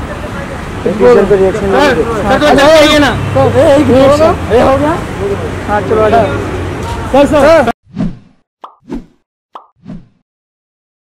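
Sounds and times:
pop sound effect: 8.6 - 9.0, 9.6 - 9.9.

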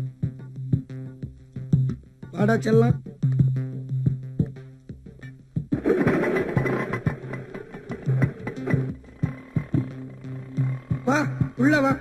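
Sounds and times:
plucked guitar-like notes: 5.8 - 11.6.

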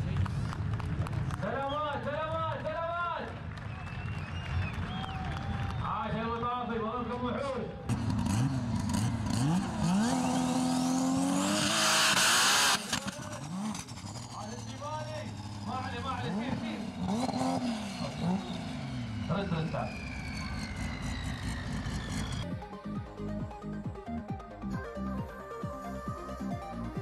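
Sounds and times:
suv engine revving: 7.9 - 22.4.

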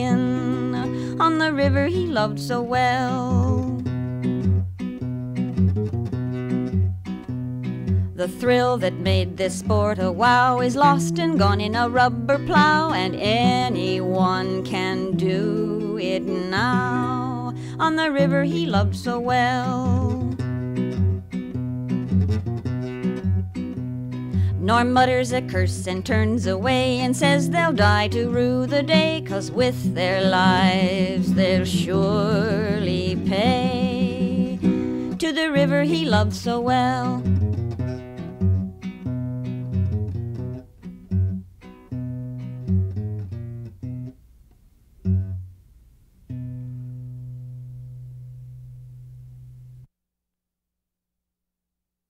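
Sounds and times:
acoustic guitar strumming: 0.0 - 49.9
acoustic guitar low note ringing: 45.0 - 49.9.

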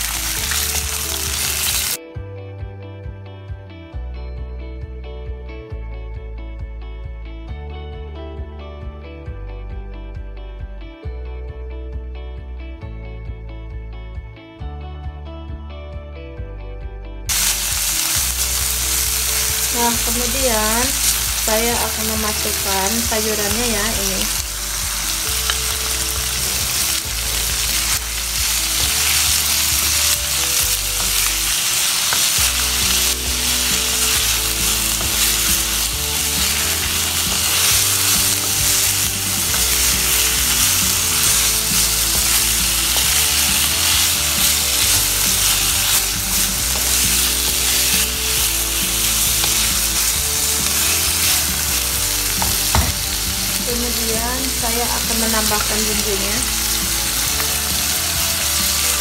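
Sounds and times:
food sizzling in hot oil: 0.0 - 2.0, 17.3 - 59.0.

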